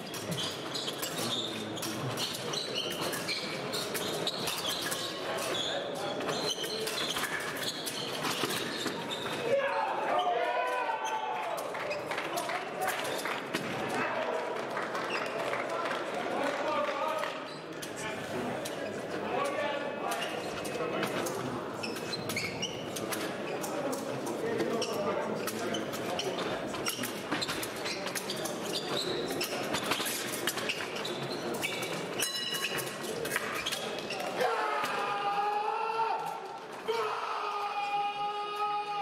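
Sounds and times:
fencing footwork and blade clicks: 20.1s - 35.0s.

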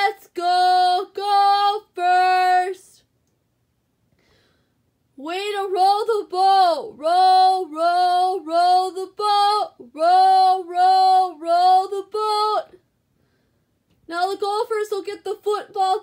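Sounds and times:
woman singing a chant: 0.0s - 3.0s, 5.2s - 12.8s.

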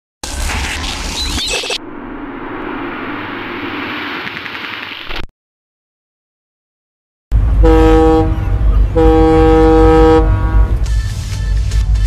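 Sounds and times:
deep steady engine rumble: 7.3s - 10.9s
boat horn blasts: 7.6s - 10.9s.

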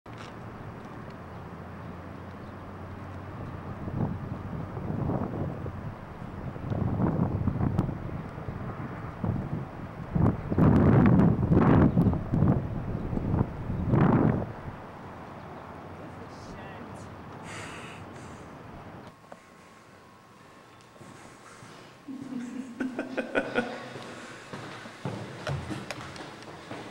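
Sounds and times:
wind buffeting microphone: 2.3s - 16.0s.

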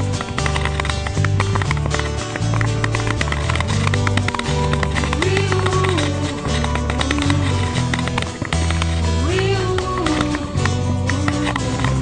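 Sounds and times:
clicking percussion beat: 0.0s - 12.0s
song with bass line: 0.0s - 12.0s.

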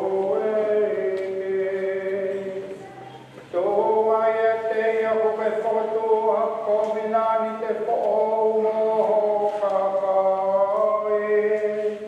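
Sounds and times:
liturgical chant singing: 0.0s - 12.0s.

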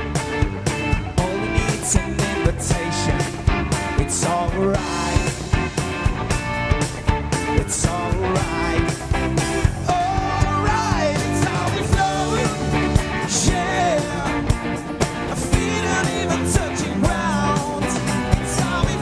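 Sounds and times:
bass guitar: 0.0s - 19.0s
drum-kit beat: 0.0s - 19.0s
electric guitar: 0.0s - 19.0s.

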